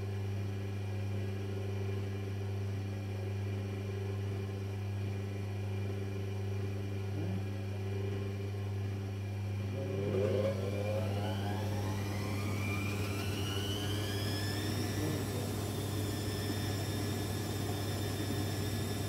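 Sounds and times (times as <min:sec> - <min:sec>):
drum motor whine rising: 0:09.3 - 0:19.0
drain pump humming: 0:09.5 - 0:19.0.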